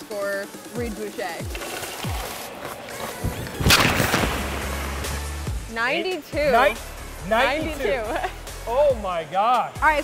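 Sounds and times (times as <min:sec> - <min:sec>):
electronic background music: 0:00.0 - 0:10.0
hockey stick slapshot crack: 0:02.6 - 0:05.1.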